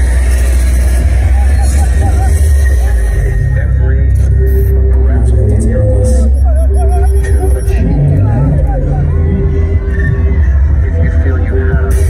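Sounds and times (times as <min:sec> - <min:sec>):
crowd noise: 0:00.0 - 0:12.0
heavy bass from stage speakers: 0:00.0 - 0:12.0
voices singing over music: 0:00.0 - 0:12.0.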